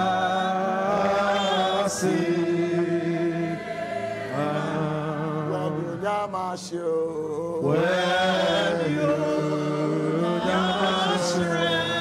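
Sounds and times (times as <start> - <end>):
congregation singing slow song: 0.0 - 12.0.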